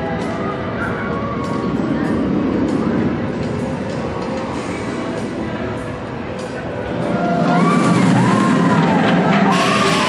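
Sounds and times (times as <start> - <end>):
roller coaster train rushing: 0.0 - 10.0.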